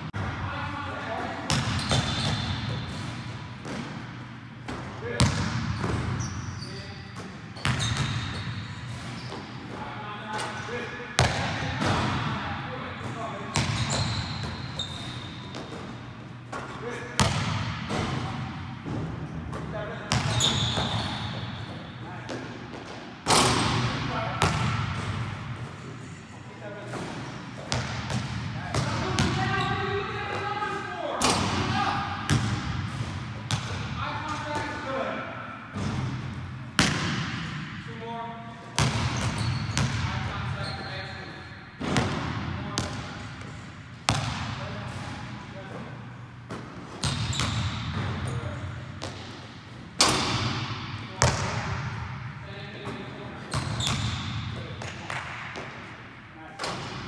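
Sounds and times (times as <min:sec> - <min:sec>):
basketball bouncing on wooden floor: 0:44.1 - 0:44.4.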